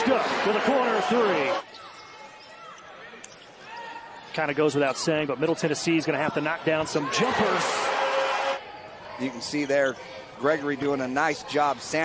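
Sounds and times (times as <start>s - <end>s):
faint arena background: 0.0s - 12.0s
sneaker squeaks: 1.6s - 4.0s.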